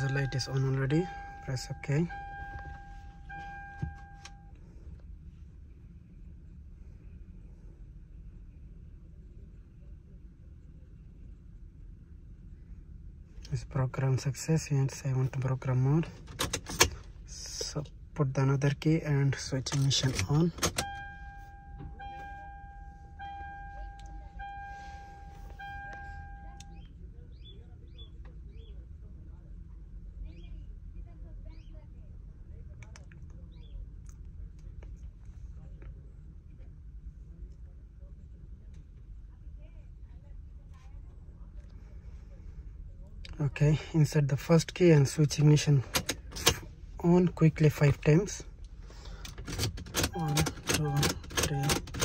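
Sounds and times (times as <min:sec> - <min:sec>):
electronic beep tone: 0:00.0 - 0:04.5, 0:20.8 - 0:26.8
faint low hum: 0:00.0 - 0:52.0.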